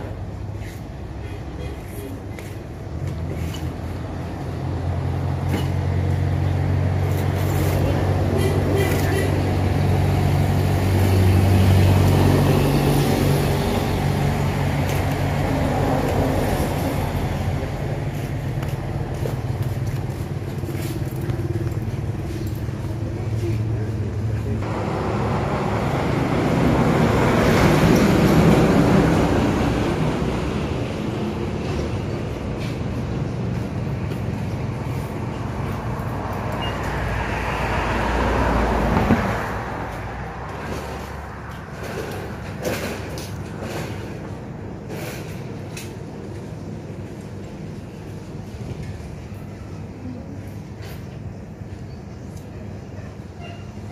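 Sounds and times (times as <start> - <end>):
vehicle passing: 9.3 - 32.5, 33.2 - 44.2.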